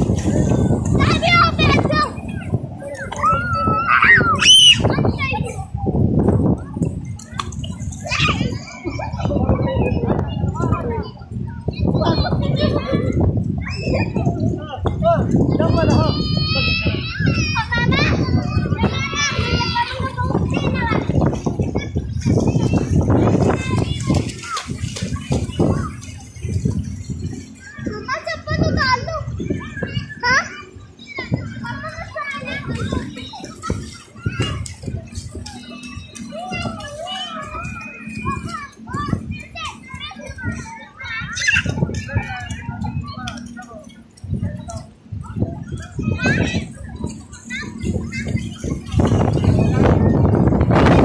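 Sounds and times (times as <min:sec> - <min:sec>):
children calling out: 0:00.0 - 0:05.8, 0:07.2 - 0:10.6, 0:11.6 - 0:14.7, 0:15.6 - 0:50.6
other voices: 0:00.0 - 0:50.8
rush of wind and water: 0:00.0 - 0:51.0.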